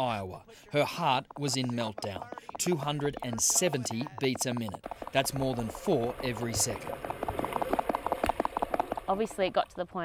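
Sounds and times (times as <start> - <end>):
fast heartbeat thumps: 0.0 - 9.6.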